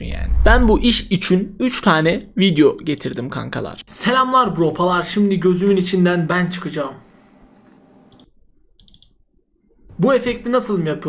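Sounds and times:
computer mouse clicks: 0:07.6 - 0:09.2.

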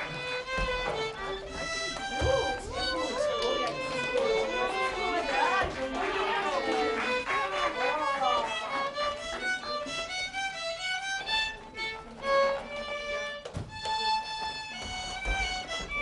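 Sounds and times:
violin slow melody: 0:00.0 - 0:16.0.

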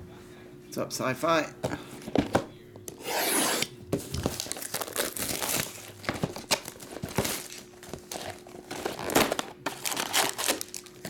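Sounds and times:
plastic wrap crinkling: 0:04.1 - 0:11.0.

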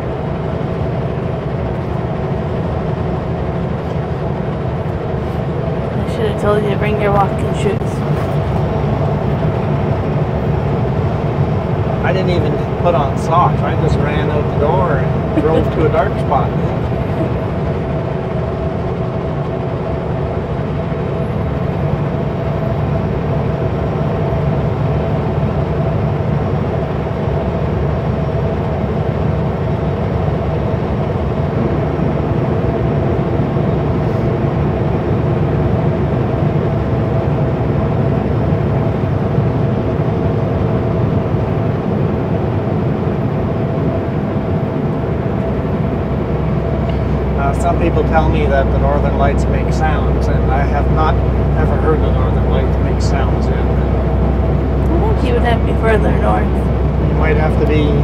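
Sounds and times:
road rumble: 0:00.0 - 0:58.0
truck engine drone: 0:00.0 - 0:58.0.

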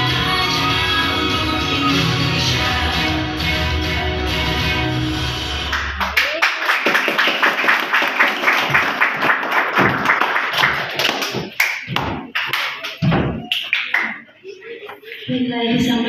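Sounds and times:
audience applause: 0:05.7 - 0:14.6.

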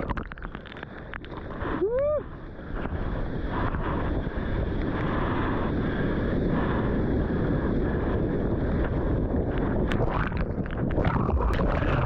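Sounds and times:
wind buffeting microphone: 0:01.0 - 0:12.0
water splashes: 0:09.8 - 0:12.0.

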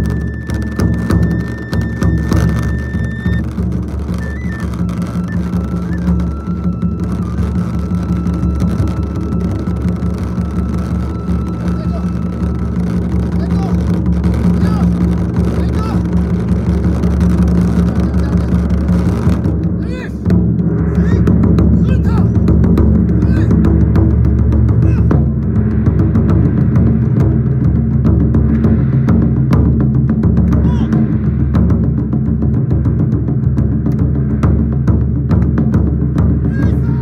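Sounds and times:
flute holding high notes: 0:00.0 - 0:15.0
taiko drums rolling: 0:00.0 - 0:37.0.

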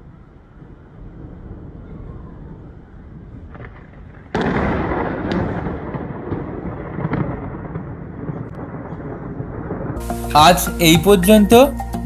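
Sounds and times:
thunder crack and rumble: 0:00.0 - 0:10.0.

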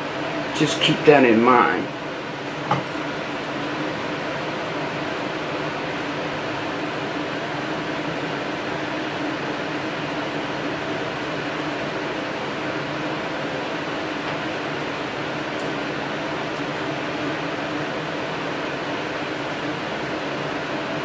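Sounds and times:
background hum and hiss: 0:00.0 - 0:21.0.

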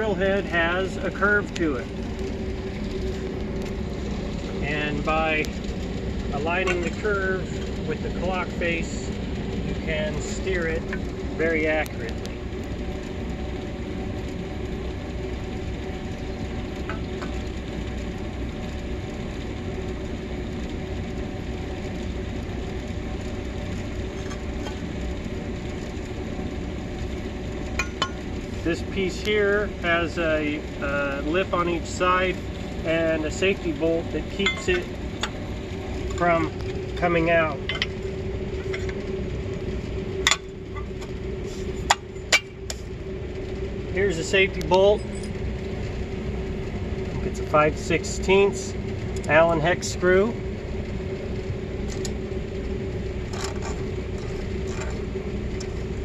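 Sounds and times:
engine humming: 0:00.0 - 0:56.0.

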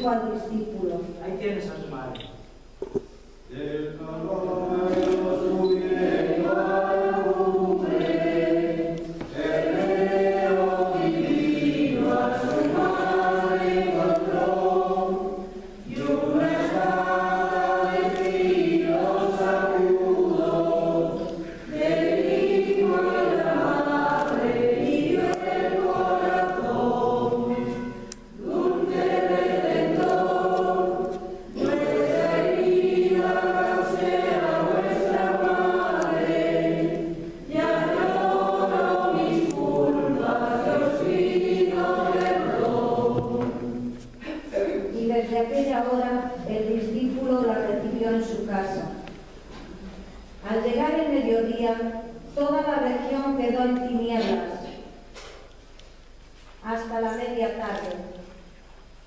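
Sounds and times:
choir singing: 0:03.8 - 0:44.0.

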